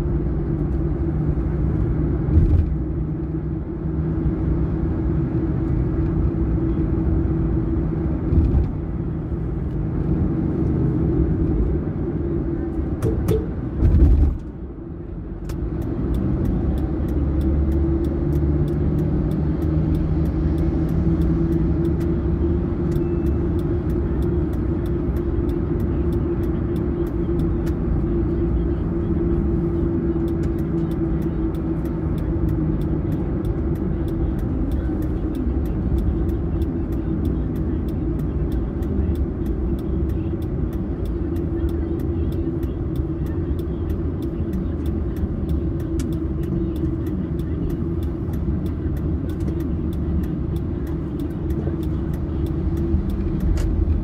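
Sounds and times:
car engine and tyre noise: 0:00.0 - 0:54.0.

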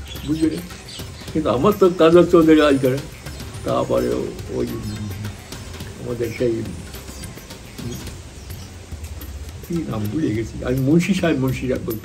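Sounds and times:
dove cooing: 0:00.0 - 0:11.1
man's voice: 0:00.1 - 0:06.9, 0:09.7 - 0:12.0.

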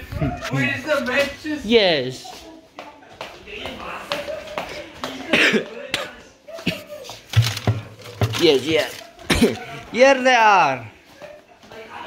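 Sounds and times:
man coughing: 0:05.2 - 0:07.0, 0:09.3 - 0:09.8.

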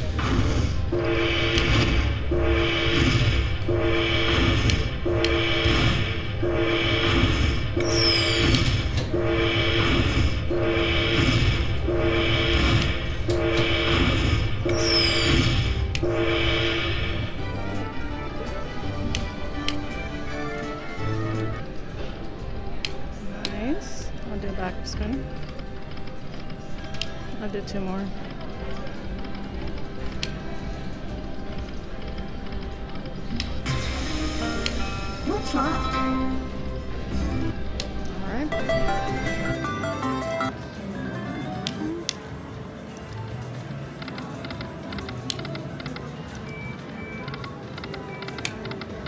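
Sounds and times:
slot machine chiming music: 0:00.9 - 0:21.6, 0:33.6 - 0:41.6.

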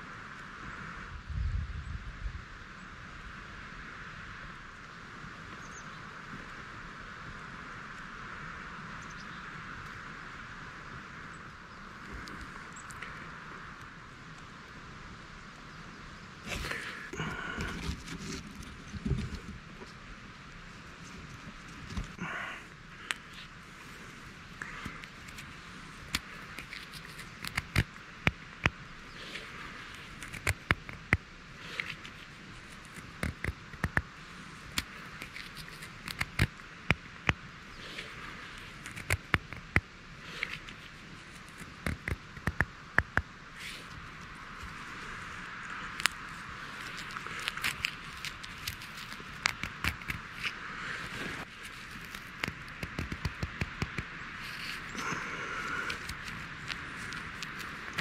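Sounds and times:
dry wood clicking and crackling: 0:24.5 - 0:58.0.

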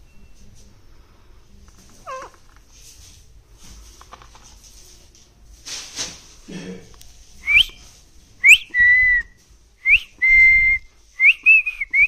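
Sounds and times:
parakeet call: 0:02.0 - 0:02.4.

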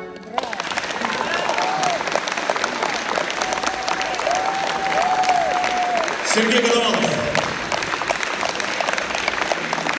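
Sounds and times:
audience applauding: 0:00.0 - 0:09.9.

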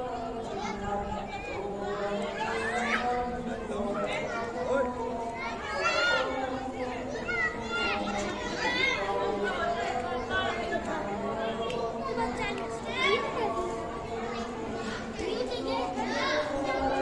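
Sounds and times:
children's voices: 0:00.0 - 0:17.0
people chattering: 0:00.0 - 0:17.0.

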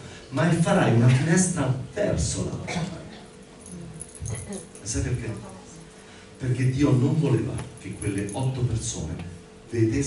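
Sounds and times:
man speaking into a microphone: 0:00.0 - 0:03.2, 0:04.8 - 0:05.5, 0:06.4 - 0:10.0
faint light clinks: 0:03.1 - 0:06.1, 0:07.6 - 0:08.8.

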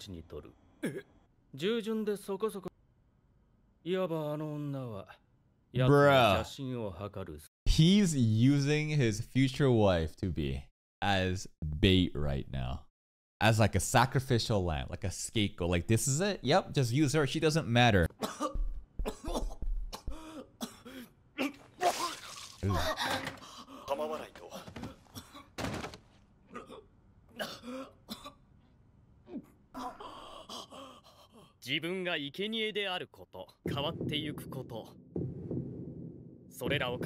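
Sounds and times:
narrator speaking: 0:05.8 - 0:06.6, 0:33.2 - 0:35.0, 0:36.6 - 0:37.0.

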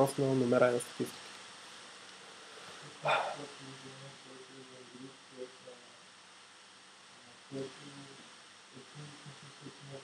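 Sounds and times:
faint speech: 0:02.8 - 0:06.1.

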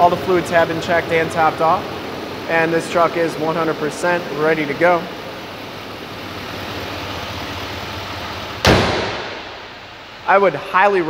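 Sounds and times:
diesel engine humming: 0:00.0 - 0:11.0
truck hood slamming shut: 0:08.6 - 0:09.6.

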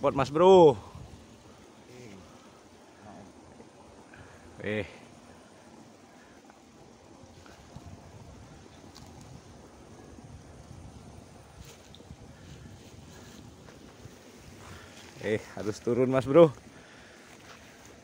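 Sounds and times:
faint clicks and rustles: 0:00.4 - 0:18.0
wind on microphone: 0:07.1 - 0:16.7.

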